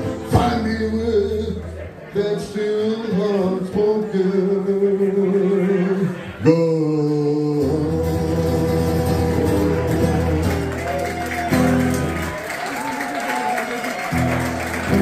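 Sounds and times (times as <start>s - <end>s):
acoustic guitar strumming: 0.0s - 12.4s, 14.1s - 15.0s
audience applause: 9.7s - 15.0s.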